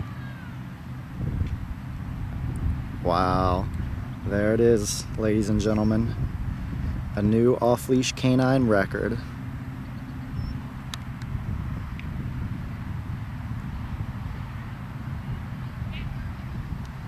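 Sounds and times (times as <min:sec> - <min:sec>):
low outdoor rumble: 0:00.0 - 0:17.0
faint distant clicks: 0:09.8 - 0:12.1.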